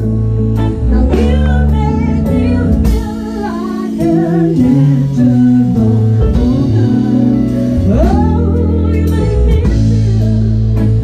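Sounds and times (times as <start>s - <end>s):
live soul band: 0.0s - 11.0s
sustained bass notes: 0.0s - 11.0s
woman singing with vibrato: 0.4s - 11.0s.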